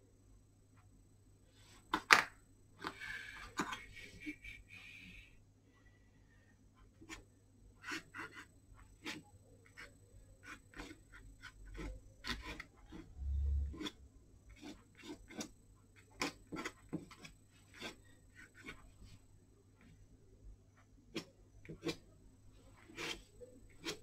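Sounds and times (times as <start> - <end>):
paintbrush scrubbing on paper: 7.8 - 13.1, 16.2 - 19.2, 22.6 - 24.0.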